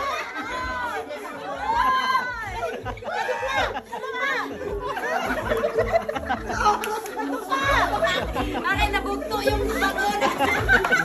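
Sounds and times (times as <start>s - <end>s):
music with pulsing bass beat: 0.0s - 11.0s
people talking and calling out: 0.0s - 11.0s.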